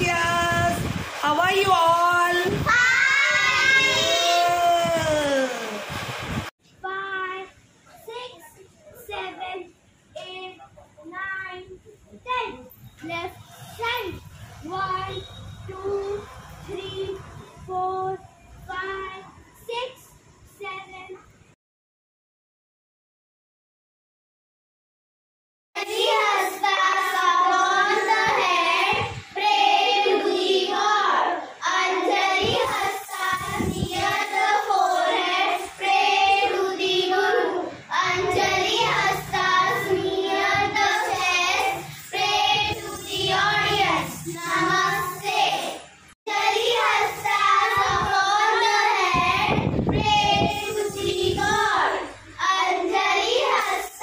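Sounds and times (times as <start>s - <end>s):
children singing together: 25.8s - 54.0s.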